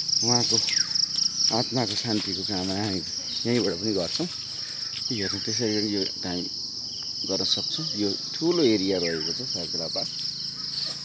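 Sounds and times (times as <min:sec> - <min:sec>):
high-pitched insects droning: 0:00.0 - 0:11.0.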